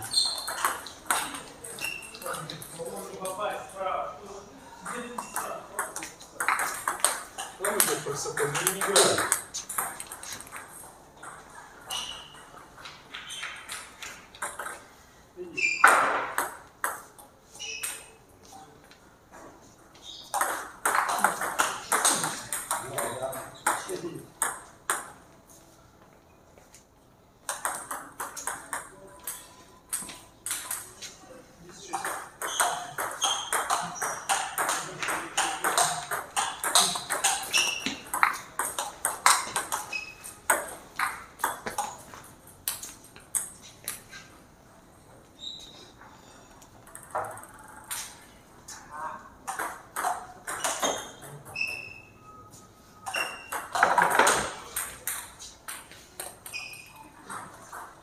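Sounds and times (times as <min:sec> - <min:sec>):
table tennis balls clicking: 0:00.0 - 0:02.4, 0:04.9 - 0:14.9, 0:20.3 - 0:25.2, 0:27.4 - 0:31.1, 0:31.9 - 0:44.2, 0:46.6 - 0:48.3, 0:49.4 - 0:52.0, 0:53.0 - 0:58.0.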